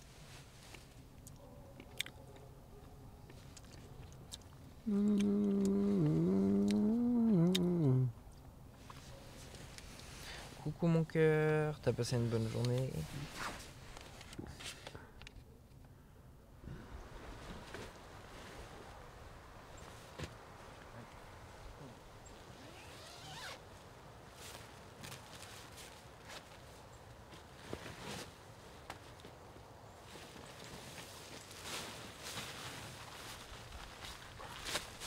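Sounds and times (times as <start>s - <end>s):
person humming: 4.8s - 8.2s
tent zipper being pulled: 22.6s - 23.6s.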